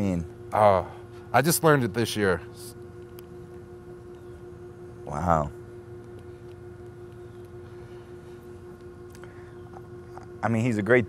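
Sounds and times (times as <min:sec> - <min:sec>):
steady constant-pitch hum: 0:00.0 - 0:11.0.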